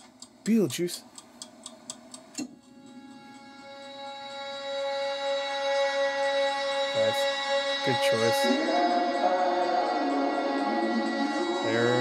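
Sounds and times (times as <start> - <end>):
steady ticking: 0.0 - 5.5
sustained musical chord: 2.6 - 12.0.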